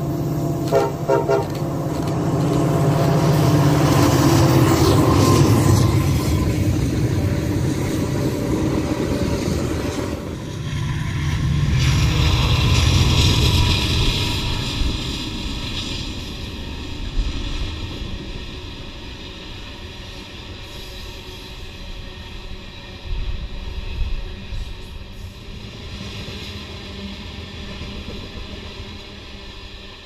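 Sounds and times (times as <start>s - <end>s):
train horn toots: 0.5s - 3.8s.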